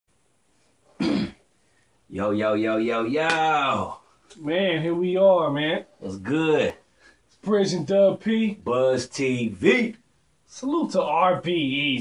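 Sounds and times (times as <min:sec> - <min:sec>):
man clearing throat: 0:01.0 - 0:01.5.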